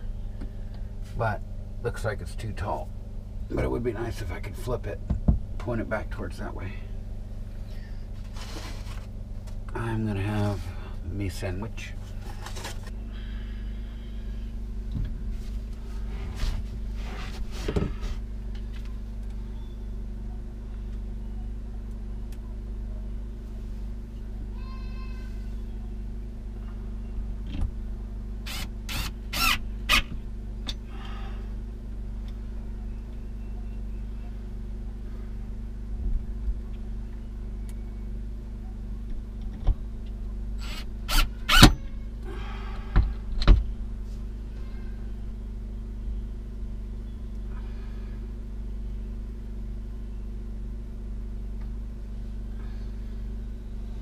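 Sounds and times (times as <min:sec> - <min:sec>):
steady low hum: 0:00.0 - 0:54.0
cordless drill whirring: 0:28.5 - 0:30.1, 0:40.6 - 0:41.7.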